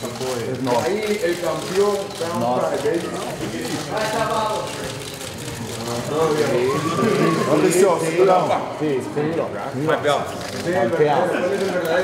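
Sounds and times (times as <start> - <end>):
murmur of voices: 0.0 - 12.0
man talking: 0.1 - 4.9.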